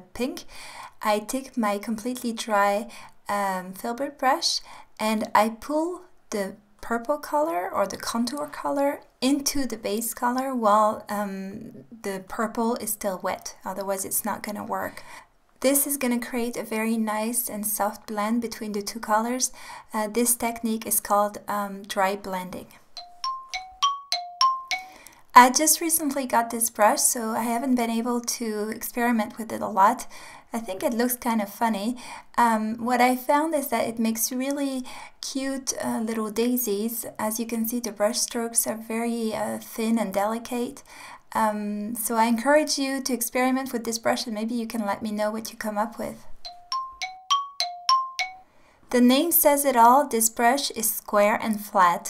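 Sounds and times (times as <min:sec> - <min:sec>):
bell-like chime jingle: 0:23.0 - 0:25.0, 0:46.5 - 0:48.4.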